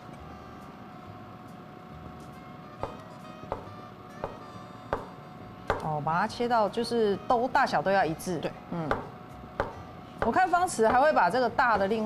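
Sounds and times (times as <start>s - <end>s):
cleaver knocking on cutting board: 2.8s - 5.1s, 8.9s - 11.1s.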